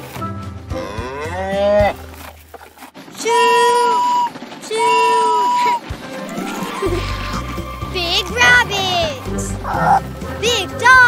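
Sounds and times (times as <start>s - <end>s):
cartoon cow mooing: 0.7s - 2.0s
toy steam train whistle: 3.3s - 7.0s.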